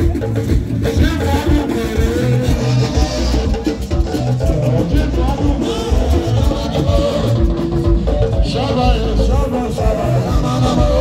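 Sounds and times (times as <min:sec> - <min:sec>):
highlife band music: 0:00.0 - 0:11.0.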